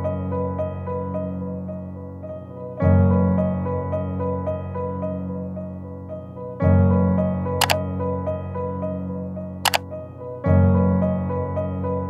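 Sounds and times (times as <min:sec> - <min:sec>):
gentle piano music: 0:00.0 - 0:12.0.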